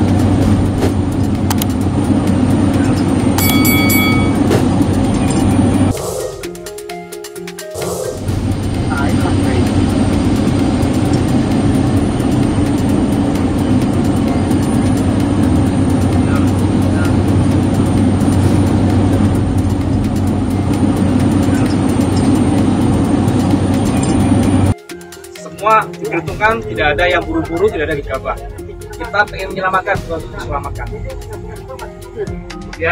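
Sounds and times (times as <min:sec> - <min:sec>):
helicopter engine and rotor: 0:00.0 - 0:06.6, 0:08.0 - 0:24.8.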